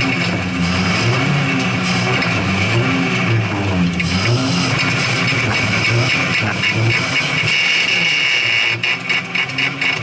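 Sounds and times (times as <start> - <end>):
race car engine revving: 0.0 - 10.0.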